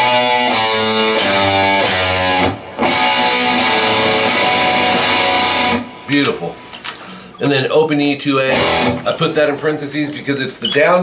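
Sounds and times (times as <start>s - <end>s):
electric guitar strumming chords: 0.0s - 6.7s, 8.5s - 9.2s.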